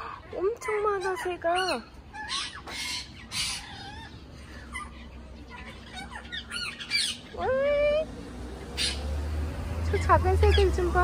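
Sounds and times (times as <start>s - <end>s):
parrots squawking: 0.0s - 7.6s, 8.6s - 9.2s, 9.9s - 11.0s.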